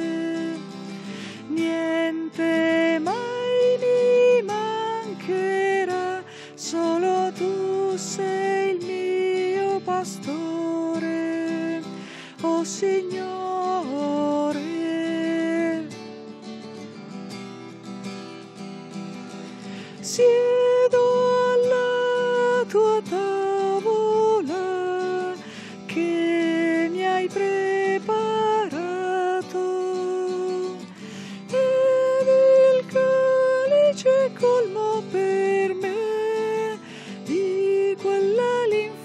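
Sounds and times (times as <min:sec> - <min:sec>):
person singing a hymn: 0:00.0 - 0:15.9, 0:20.0 - 0:39.0
strummed acoustic guitar: 0:00.0 - 0:39.0.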